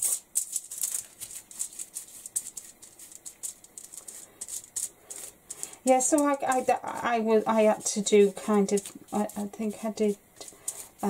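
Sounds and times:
paintbrush scrubbing on paper: 0.0 - 11.0.

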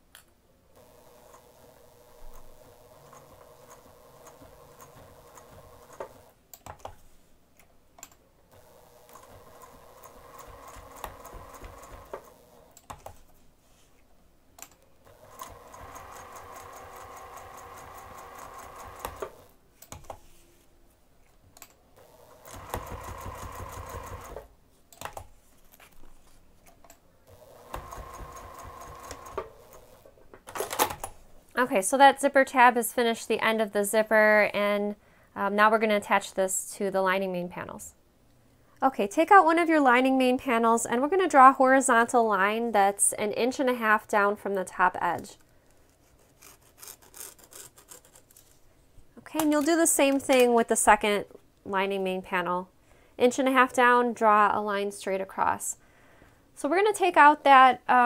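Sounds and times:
sewing machine stitching: 0.8 - 6.4, 8.5 - 13.2, 15.0 - 19.6, 22.0 - 24.5, 27.3 - 31.1.

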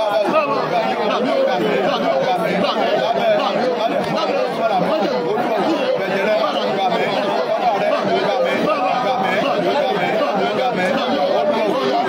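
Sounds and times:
people praying aloud: 0.0 - 12.0.

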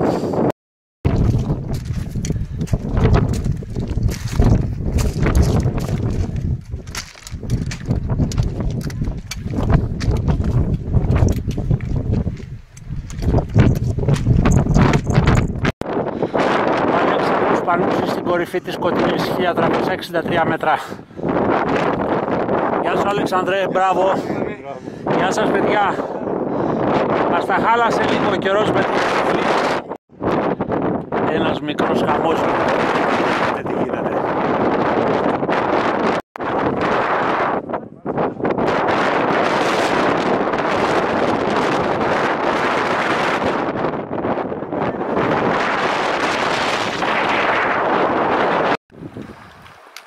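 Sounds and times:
wind on microphone: 0.0 - 50.0
footsteps on loose rock: 1.1 - 15.7.

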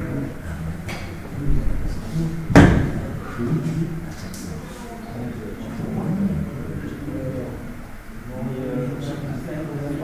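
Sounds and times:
murmur of men's voices: 0.0 - 10.0.

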